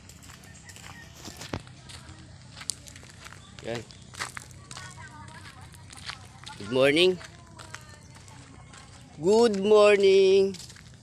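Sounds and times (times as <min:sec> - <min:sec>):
faint outdoor background: 0:00.0 - 0:11.0
man speaking: 0:09.2 - 0:10.6.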